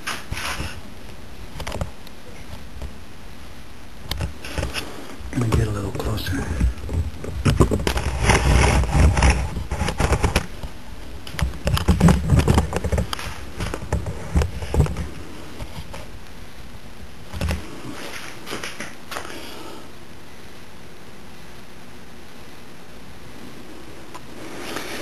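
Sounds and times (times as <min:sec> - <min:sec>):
steady low hiss: 0:00.0 - 0:25.0.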